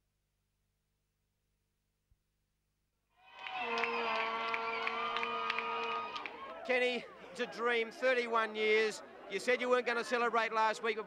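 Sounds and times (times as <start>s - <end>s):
long held yell: 3.2s - 6.2s
people clapping: 3.2s - 7.0s
crowd cheering and shouting: 3.2s - 11.0s.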